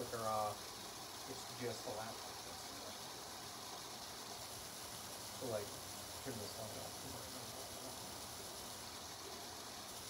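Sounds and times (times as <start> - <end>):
room tone hiss: 0.0 - 10.0.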